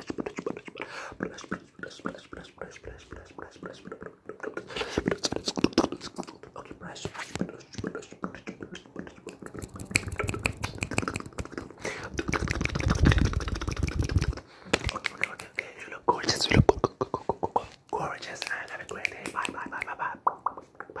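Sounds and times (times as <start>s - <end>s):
asmr whispering: 0.0s - 21.0s
rapid clicks and taps: 9.2s - 15.6s.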